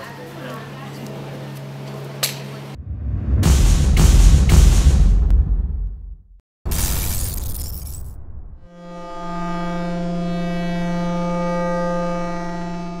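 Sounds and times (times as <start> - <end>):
crashing noise: 2.8 - 8.6.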